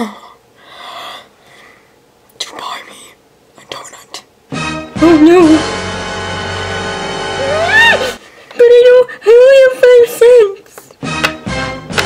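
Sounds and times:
person whispering: 2.4 - 4.3
background music: 4.5 - 8.2, 11.0 - 12.0.

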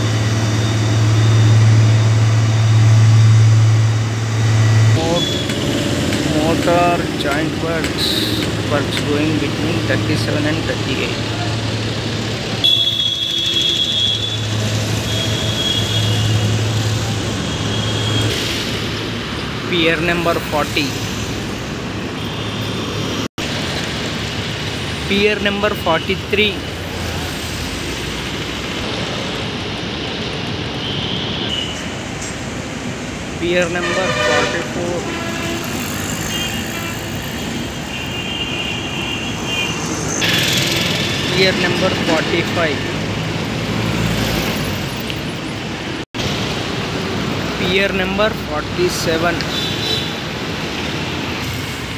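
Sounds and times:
road traffic hum: 0.0 - 51.9.

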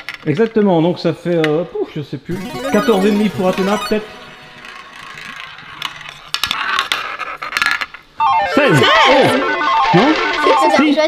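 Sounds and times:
roulette ball rolling and clicking: 3.7 - 8.1.

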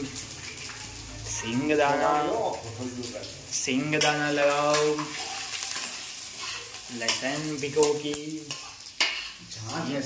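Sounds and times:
hot oil sizzling: 0.0 - 10.0
steel spoon stirring: 3.8 - 9.8.

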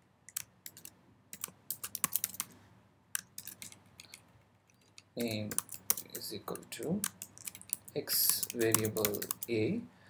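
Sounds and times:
typing on computer keyboard: 0.3 - 2.5, 3.2 - 9.5.

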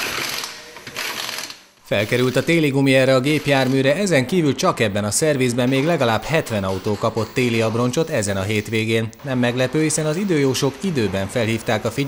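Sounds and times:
pneumatic impact wrench rattling: 0.0 - 2.4.

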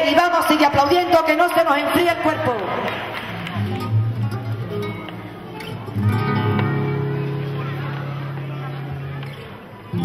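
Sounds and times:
flamenco guitar strumming: 3.2 - 10.0.

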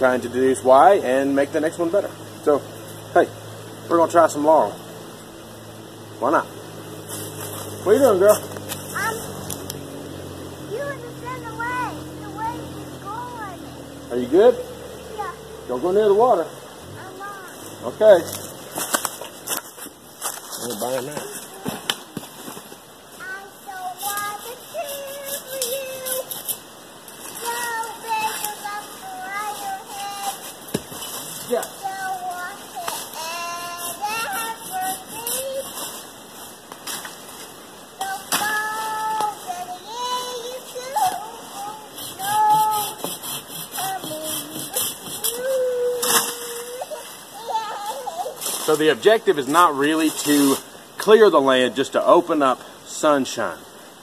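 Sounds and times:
young child singing and babbling: 8.9 - 9.4, 10.7 - 13.7, 15.1 - 15.5, 17.0 - 17.6, 23.2 - 26.6, 27.3 - 30.6, 31.6 - 36.0, 38.0 - 48.6.

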